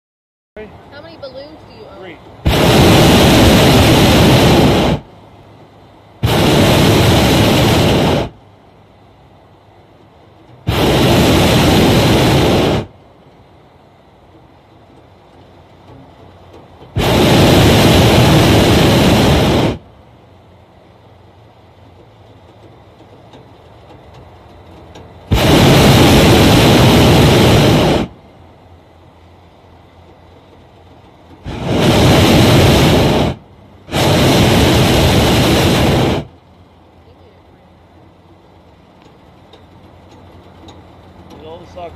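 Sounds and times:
propane burner blasts: 0.6 - 41.9.

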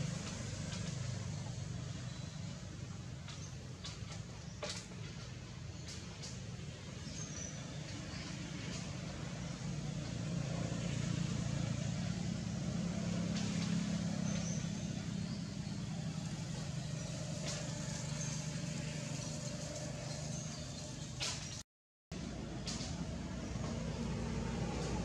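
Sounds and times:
vehicle engine humming: 0.0 - 25.0.

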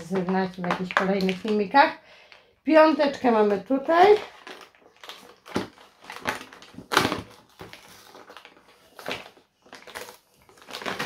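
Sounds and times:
cardboard tearing: 4.2 - 11.0.

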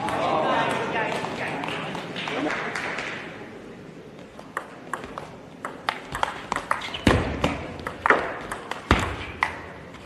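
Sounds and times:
crowd noise in a hall: 0.0 - 10.0.

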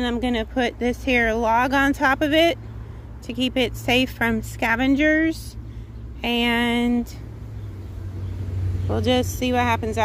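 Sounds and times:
distant motor vehicle rumble: 0.0 - 10.0.

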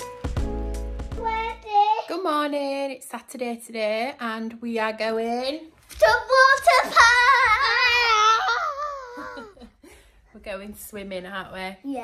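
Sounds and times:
background music: 0.0 - 1.8.

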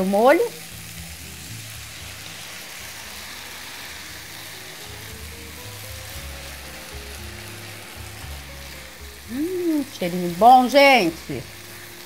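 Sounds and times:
background music: 0.0 - 12.0
food sizzling in a pan: 0.0 - 12.0.

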